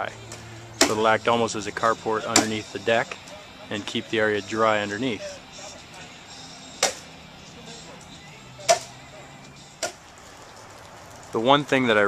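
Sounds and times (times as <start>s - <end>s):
faint steady hum: 0.0s - 10.2s.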